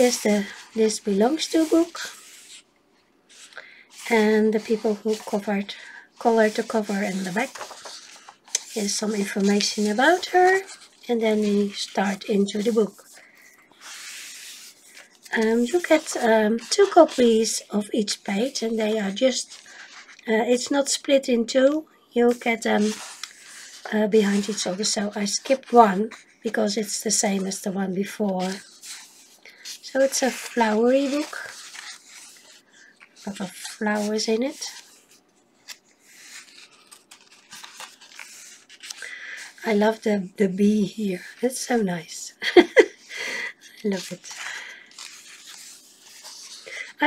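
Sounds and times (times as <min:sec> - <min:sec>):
hand swishing over paper: 0:00.0 - 0:02.7, 0:03.3 - 0:13.2, 0:13.8 - 0:17.5, 0:22.7 - 0:26.3, 0:28.4 - 0:32.6.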